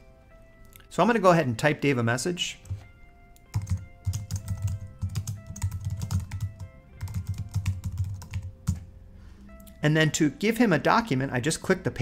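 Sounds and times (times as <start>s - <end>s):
computer keyboard typing: 3.5s - 8.9s.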